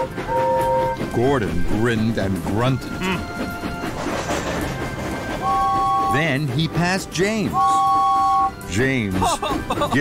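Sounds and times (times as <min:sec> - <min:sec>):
background music: 0:00.0 - 0:10.0
rail noise: 0:00.0 - 0:10.0.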